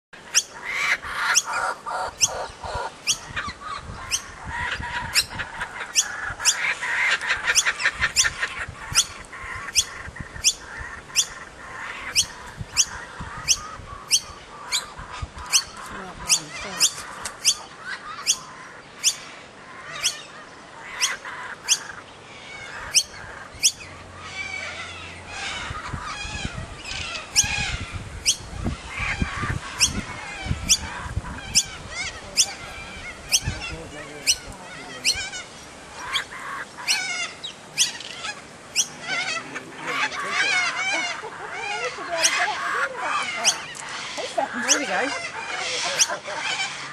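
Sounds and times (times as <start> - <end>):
kookaburra harsh begging call: 0.3 - 46.9
kookaburra chuckling chatter: 0.6 - 10.1, 37.8 - 46.9.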